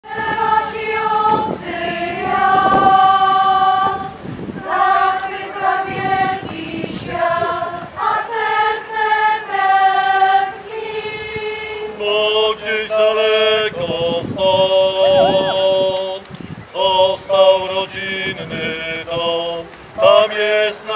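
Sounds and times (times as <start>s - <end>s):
mixed choir singing unaccompanied: 0.0s - 16.2s, 16.8s - 20.9s.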